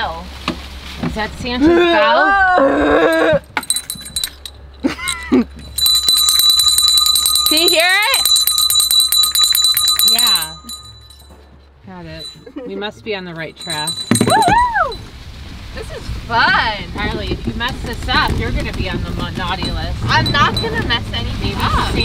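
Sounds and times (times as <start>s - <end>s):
bells jingling: 3.1s - 15.1s, 19.4s - 22.0s.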